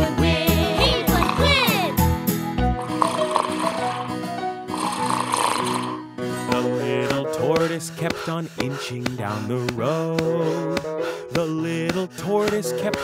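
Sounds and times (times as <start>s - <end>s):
bouncy children's song music: 0.0s - 13.0s
cartoon snores: 2.9s - 6.0s.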